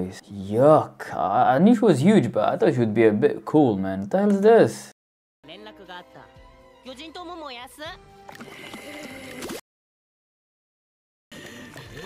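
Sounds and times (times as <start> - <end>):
background music: 0.0 - 9.6.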